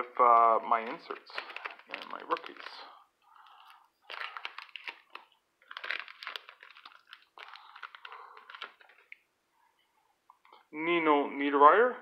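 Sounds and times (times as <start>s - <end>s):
plastic wrapper crinkling and tearing: 0.2s - 9.2s.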